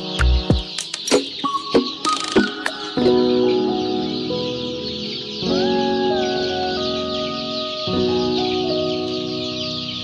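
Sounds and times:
background music with held chords: 0:00.0 - 0:10.0
chicks peeping: 0:00.0 - 0:10.0.

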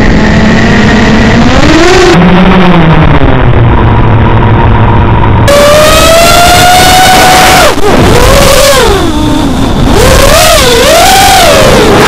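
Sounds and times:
drone motors whining: 0:00.0 - 0:12.0.

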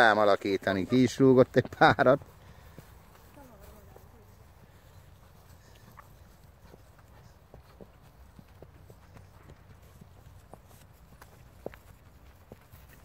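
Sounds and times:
horse hooves walking on dry ground: 0:00.0 - 0:13.0.

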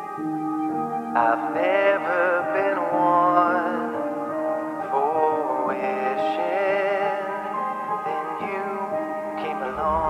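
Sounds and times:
electronic pop chords: 0:00.0 - 0:10.0
processed sung vocal: 0:01.1 - 0:10.0.

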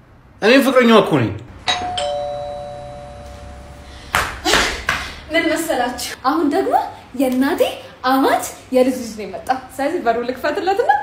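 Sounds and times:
two-note doorbell chime: 0:01.7 - 0:03.9.

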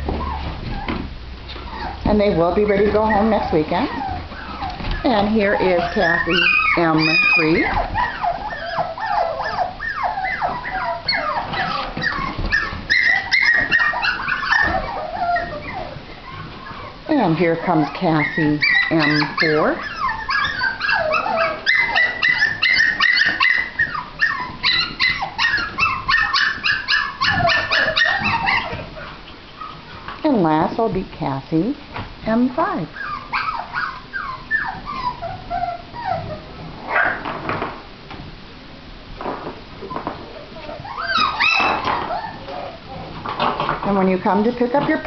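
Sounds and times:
puppies whining: 0:00.0 - 0:30.2, 0:32.6 - 0:37.8, 0:39.2 - 0:45.0
puppies yapping: 0:00.0 - 0:30.2, 0:32.9 - 0:37.8, 0:39.2 - 0:45.0.

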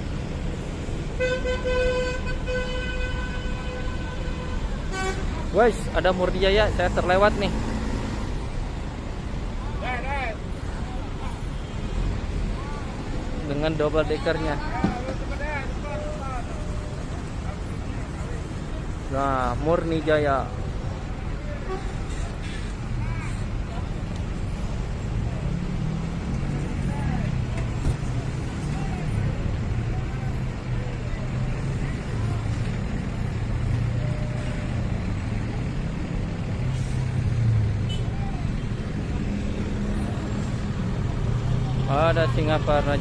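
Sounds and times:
road traffic drone: 0:00.0 - 0:43.0
bus engines idling: 0:03.6 - 0:43.0.

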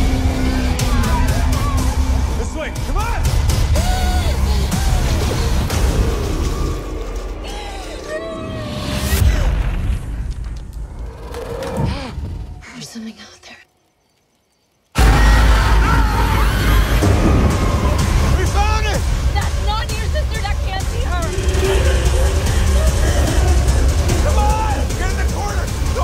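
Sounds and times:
breathy whispered voice: 0:11.9 - 0:13.7
low drone: 0:14.9 - 0:26.0
loud deep rumble: 0:15.0 - 0:26.0.

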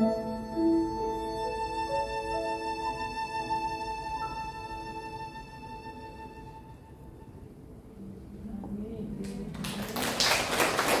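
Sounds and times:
violin and piano notes: 0:00.0 - 0:07.8
audience applause: 0:09.6 - 0:11.0.

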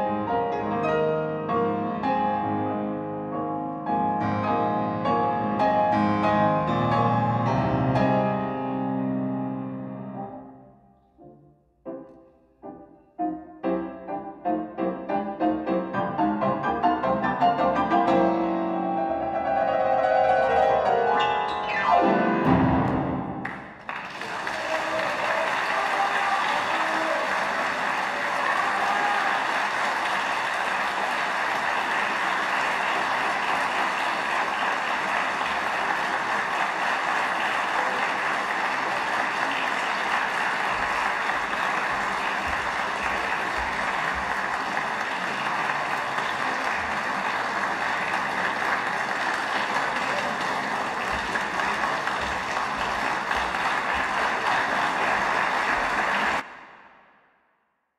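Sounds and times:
large audience applauding: 0:22.9 - 0:56.9.

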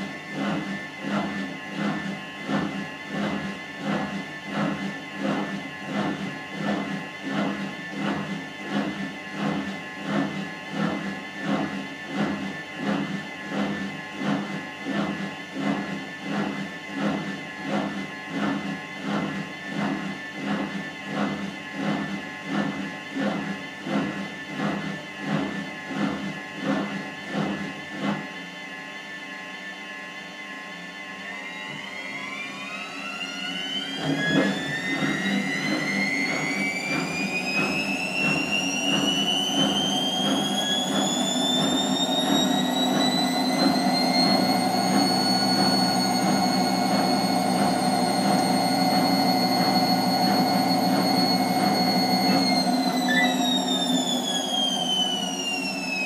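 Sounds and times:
motor whine rising: 0:29.6 - 0:56.0
motor hum: 0:31.2 - 0:56.0.

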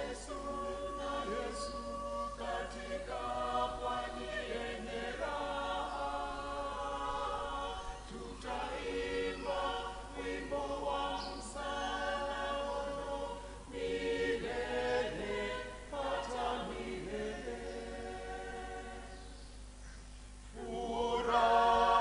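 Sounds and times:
church choir singing a hymn: 0:00.0 - 0:19.5, 0:20.5 - 0:22.0.

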